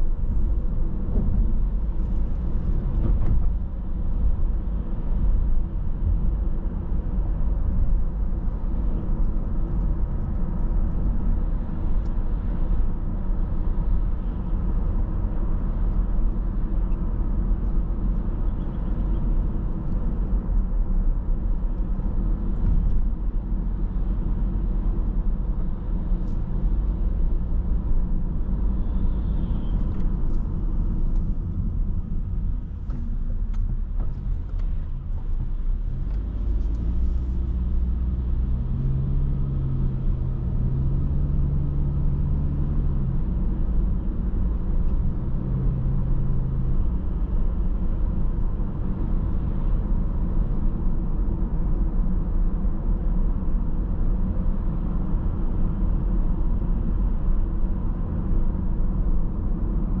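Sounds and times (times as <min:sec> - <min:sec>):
car engine and tyre rumble: 0:00.0 - 1:00.0.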